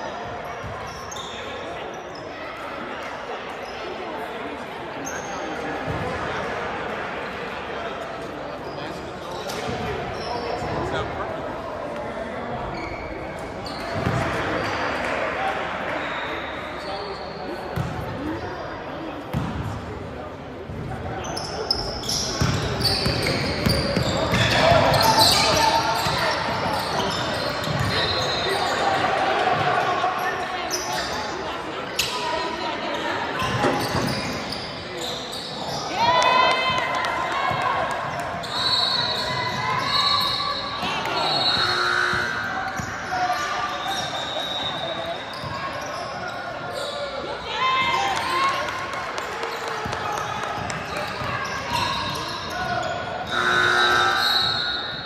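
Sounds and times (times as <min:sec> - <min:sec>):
voices echoing in a hall: 0:00.0 - 0:55.0
shoe squeaks: 0:00.5 - 0:02.5, 0:05.0 - 0:05.5, 0:12.6 - 0:14.1, 0:21.2 - 0:29.0, 0:30.6 - 0:31.4, 0:33.4 - 0:35.9, 0:38.4 - 0:47.3, 0:50.9 - 0:55.0.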